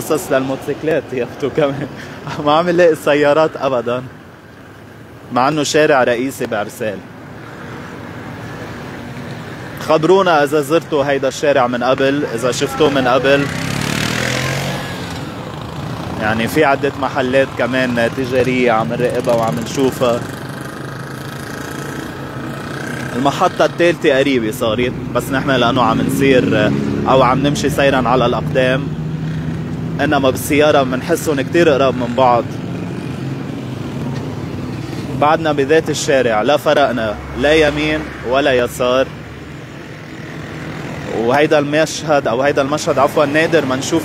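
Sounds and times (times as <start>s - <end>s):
street traffic drone: 0.0s - 44.0s
trucks driving past: 0.0s - 44.0s
motorcycle driving past: 12.0s - 35.2s, 36.8s - 41.2s.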